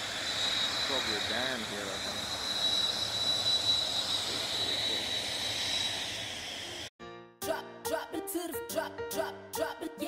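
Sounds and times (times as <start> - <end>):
drone hovering whine: 0.0 - 6.9.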